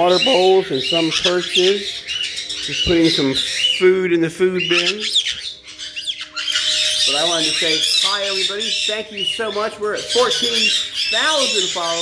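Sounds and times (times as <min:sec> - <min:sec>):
parrots squawking: 0:00.0 - 0:12.0.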